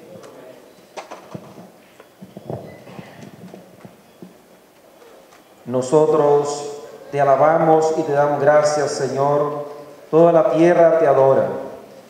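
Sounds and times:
faint murmur: 0.0s - 10.4s
footsteps on hard floor: 1.3s - 4.4s.

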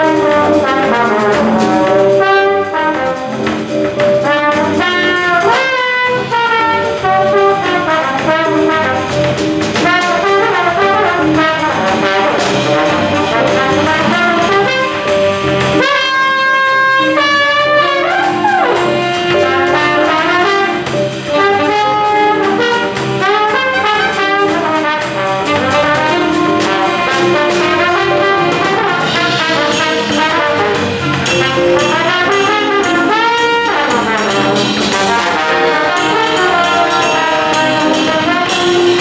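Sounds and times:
big band playing jazz: 0.0s - 39.0s
trombone sliding glides: 0.0s - 39.0s.

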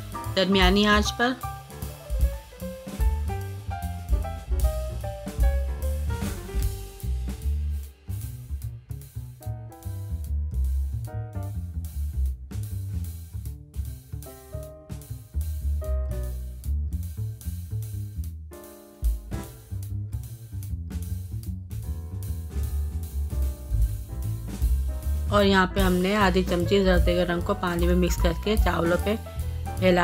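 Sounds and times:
drum-kit beat: 0.0s - 30.0s
heavy bass line: 0.0s - 30.0s.

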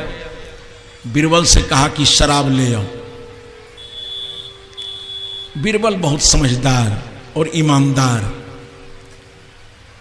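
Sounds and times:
steady high-pitched tone: 2.2s - 7.2s.

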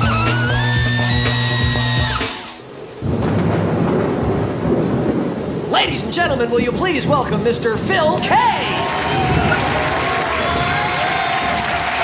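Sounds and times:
heavy rain: 0.0s - 12.0s
low rumbling thunder: 0.8s - 12.0s
man's voice: 5.7s - 9.4s.

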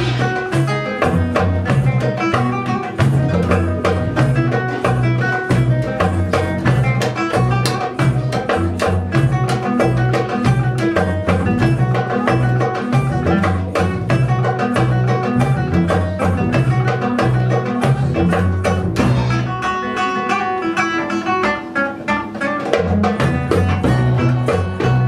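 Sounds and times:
walking bass line: 0.0s - 19.7s, 22.9s - 25.0s
drum strikes: 0.0s - 20.0s, 21.1s - 25.0s
classical guitar notes: 0.0s - 25.0s.

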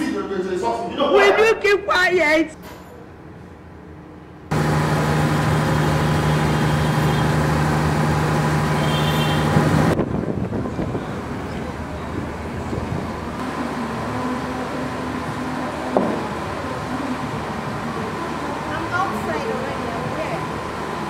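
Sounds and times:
outdoor traffic ambience: 0.0s - 21.0s
motor humming with low drone: 4.5s - 9.9s.

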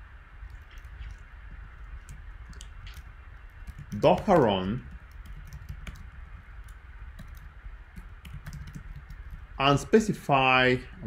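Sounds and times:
computer keyboard keystrokes: 0.5s - 1.2s, 1.9s - 9.4s.

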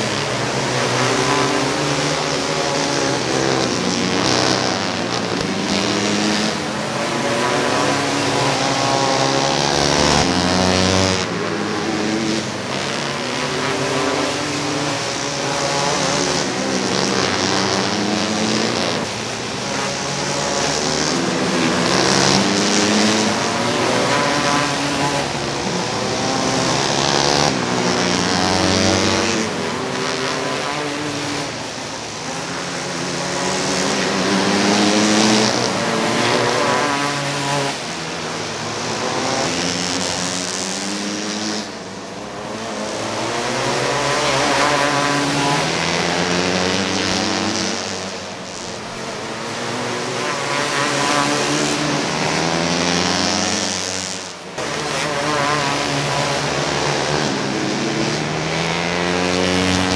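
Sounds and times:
kart engines revving: 0.0s - 59.9s.

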